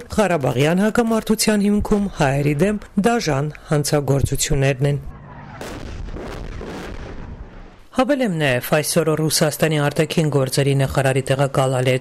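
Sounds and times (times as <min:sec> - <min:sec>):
explosion blast: 0:05.1 - 0:07.9
gunfire cracks: 0:05.3 - 0:07.9.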